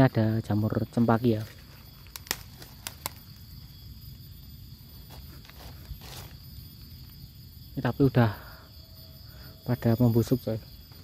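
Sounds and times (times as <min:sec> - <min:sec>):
forest insects droning: 0:00.0 - 0:11.0.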